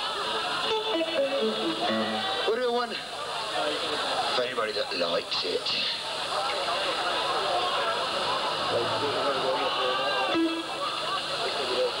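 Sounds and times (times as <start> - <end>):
guitar picking single notes: 0.7 - 2.7, 10.3 - 11.1.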